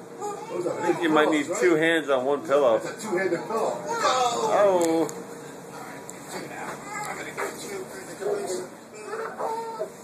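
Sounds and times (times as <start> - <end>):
child squealing: 3.8 - 4.5, 9.0 - 10.0.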